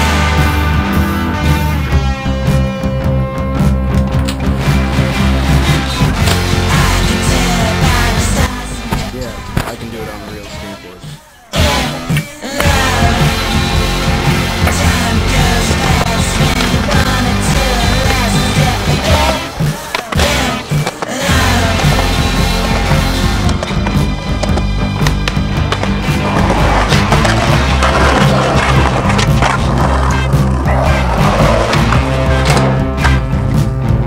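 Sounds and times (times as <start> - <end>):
music playing: 0.0 - 34.0
skateboard wheels rolling on concrete: 11.6 - 33.8
skateboard clacking: 14.4 - 33.3.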